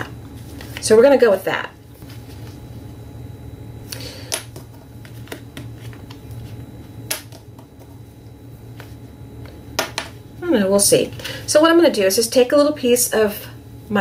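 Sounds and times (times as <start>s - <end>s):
steady low hum: 0.0s - 14.0s.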